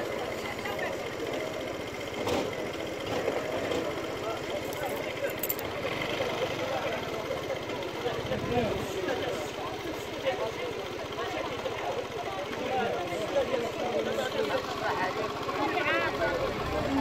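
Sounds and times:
low engine hum: 0:00.0 - 0:17.0
people chattering: 0:00.0 - 0:17.0.

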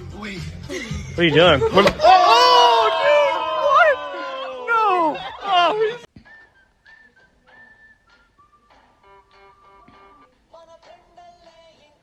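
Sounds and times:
faint whistled tune: 0:06.2 - 0:10.2.

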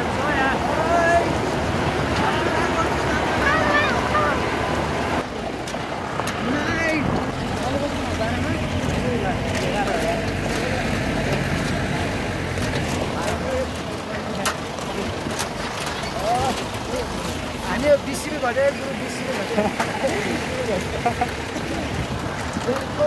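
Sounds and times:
passengers chattering and calling: 0:00.0 - 0:23.0
tyres grinding on gravel: 0:00.0 - 0:23.0
vehicle engine running low: 0:00.0 - 0:23.0
body knocks and rattles: 0:07.0 - 0:23.0.

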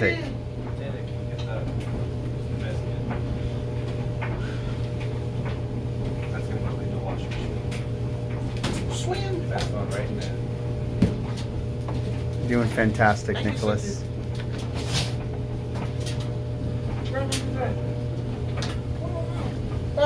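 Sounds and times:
clothes dryer humming: 0:00.0 - 0:20.0.

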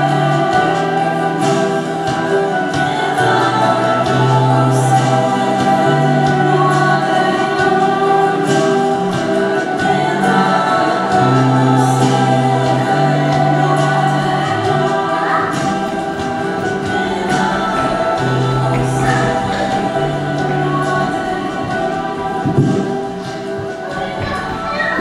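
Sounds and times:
backing voices: 0:00.0 - 0:25.0
band playing worship song: 0:00.0 - 0:25.0
woman singing lead: 0:00.0 - 0:25.0.

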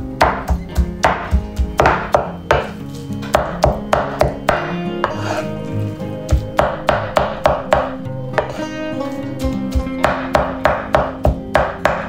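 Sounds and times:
knife chopping on wooden board: 0:00.2 - 0:02.7, 0:03.3 - 0:05.3, 0:06.6 - 0:08.6, 0:10.0 - 0:12.0.

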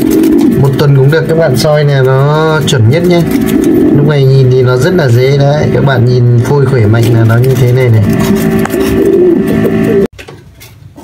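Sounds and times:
pigeons cooing: 0:00.0 - 0:10.1.

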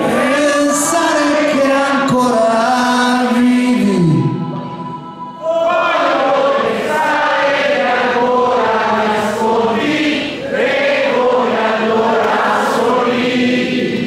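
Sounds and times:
choir-like group singing: 0:00.0 - 0:00.9, 0:04.5 - 0:14.0.

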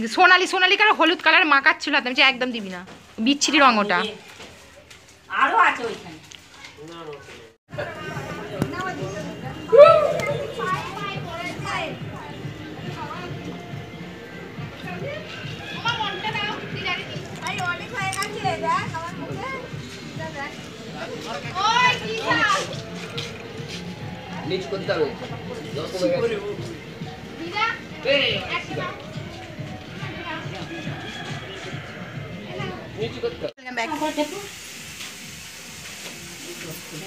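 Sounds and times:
background music: 0:07.7 - 0:34.2
children shouting and calling out: 0:09.6 - 0:12.4, 0:14.8 - 0:19.7
high-pitched child call: 0:09.7 - 0:11.2
children shouting at play: 0:09.7 - 0:12.0.

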